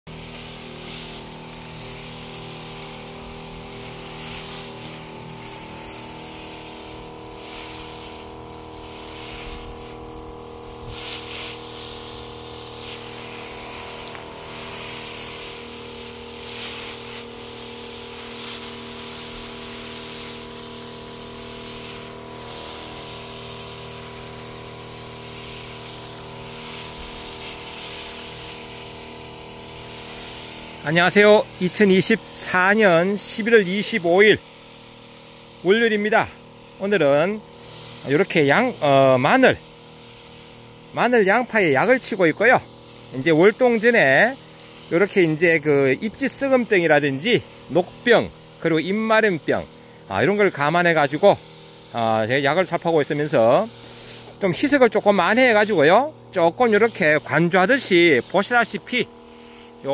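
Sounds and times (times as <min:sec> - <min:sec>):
sprayer pump drone: 0:00.0 - 0:59.9
hiss of spray from nozzle: 0:00.1 - 0:59.9.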